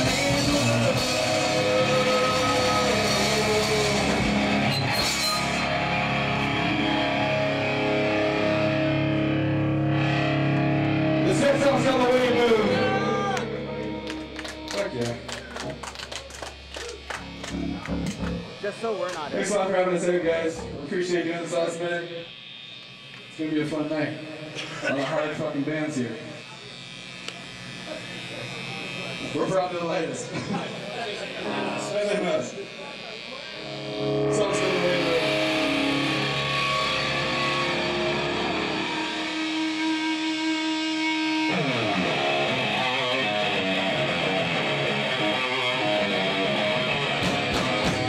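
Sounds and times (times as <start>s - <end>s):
live rock band playing: 0.0s - 20.9s, 33.6s - 48.0s
amplifier electrical buzz: 0.0s - 48.0s
electric guitars sustained notes: 0.0s - 48.0s.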